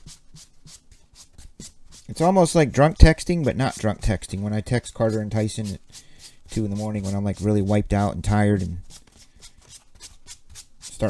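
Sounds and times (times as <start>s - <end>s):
cards rubbing and sliding: 0.0s - 11.0s.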